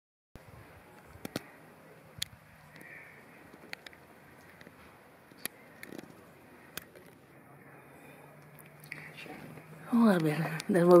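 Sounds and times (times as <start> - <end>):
robin tick calls: 2.2 - 7.2.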